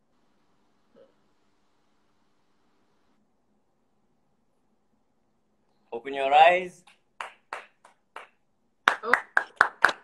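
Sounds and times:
hand clapping: 0:06.8 - 0:10.0.

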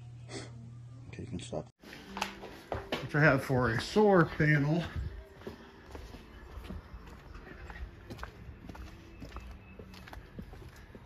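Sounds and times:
footsteps on concrete: 0:01.8 - 0:11.0.

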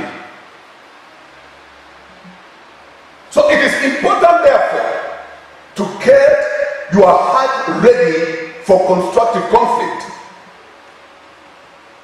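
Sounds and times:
faint room tone hiss: 0:00.0 - 0:12.0
man speaking: 0:03.3 - 0:10.3.

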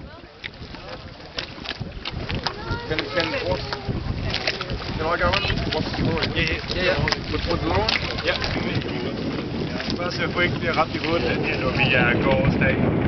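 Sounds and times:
wind buffeting microphone: 0:00.0 - 0:13.0
voices talking over one another: 0:02.2 - 0:12.8.

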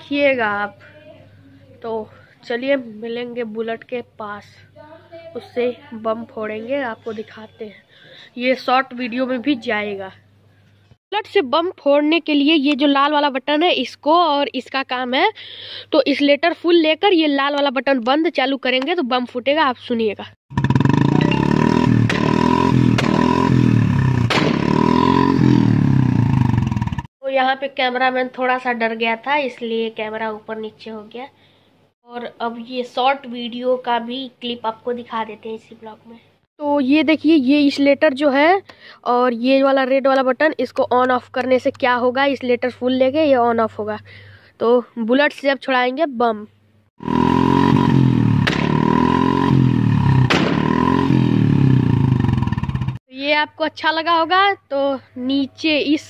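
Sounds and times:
exhaust backfire bangs: 0:20.5 - 0:27.1, 0:47.0 - 0:53.0
motorcycle engine revving: 0:20.5 - 0:27.1, 0:47.0 - 0:53.0.

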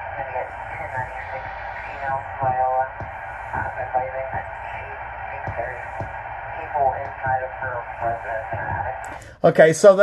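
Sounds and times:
dispatcher voice over radio: 0:00.0 - 0:09.2
radio hiss: 0:00.0 - 0:10.0.

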